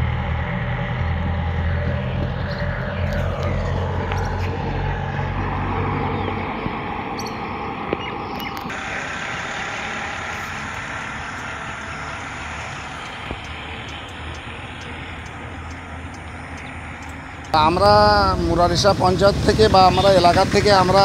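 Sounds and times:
traffic road noise: 0.0s - 21.0s
vehicle passing: 0.0s - 21.0s.

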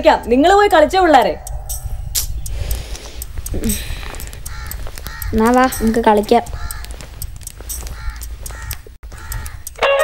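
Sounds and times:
low steady rumble: 0.0s - 5.0s
crows cawing: 2.6s - 10.0s.

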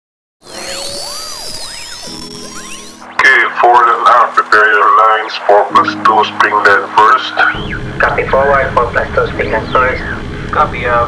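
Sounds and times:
electronic sweeping tones: 0.4s - 10.5s
steady low hum: 7.0s - 11.0s.

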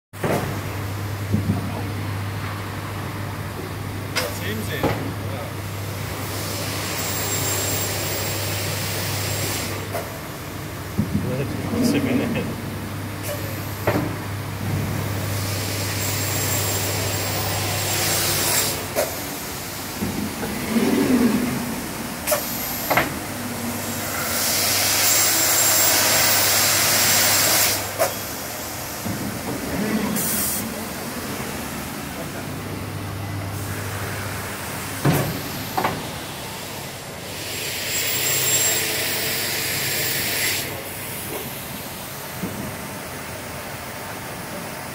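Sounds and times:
loud hissing noise: 11.7s - 29.0s, 29.7s - 32.6s
saw motor hum: 14.4s - 19.0s.

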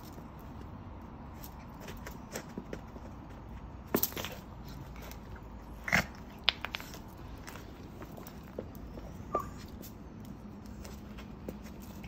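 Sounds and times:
dog scuffling on concrete: 0.0s - 12.0s.

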